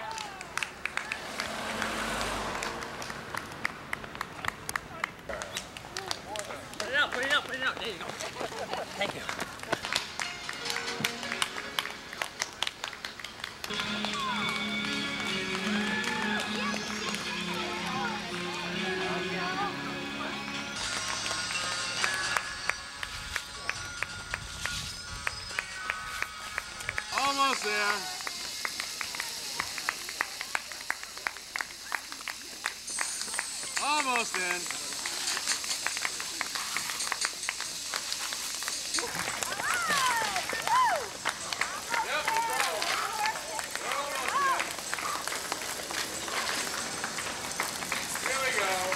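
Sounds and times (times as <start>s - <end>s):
water spraying from hose: 1.0s - 3.4s, 27.2s - 48.9s
footfalls on wet pavement: 1.0s - 17.3s, 26.2s - 48.9s
music with long held notes: 10.0s - 12.3s, 13.6s - 27.1s
voices: 13.7s - 20.8s, 26.9s - 48.9s.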